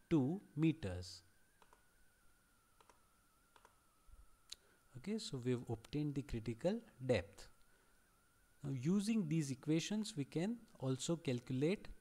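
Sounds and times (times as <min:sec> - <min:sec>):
faint high whine: 0:00.0 - 0:12.0
computer mouse clicks: 0:01.6 - 0:01.8, 0:02.8 - 0:03.8.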